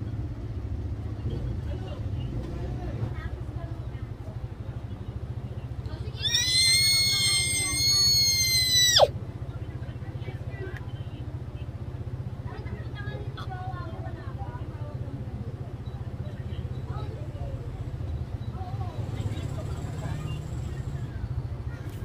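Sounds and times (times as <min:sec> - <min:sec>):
girl squealing: 0:06.2 - 0:09.1.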